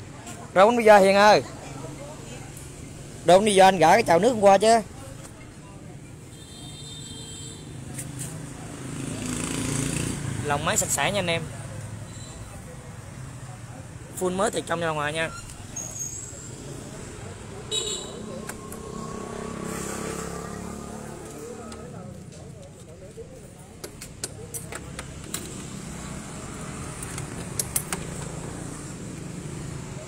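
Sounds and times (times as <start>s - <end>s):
motorcycle seat latch clicks and rattles: 23.8s - 25.8s, 26.9s - 28.6s.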